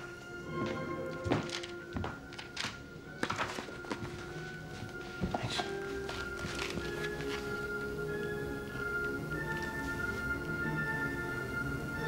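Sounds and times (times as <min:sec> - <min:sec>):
footsteps on hard floor: 0:00.0 - 0:07.9
soft background music: 0:00.0 - 0:12.0.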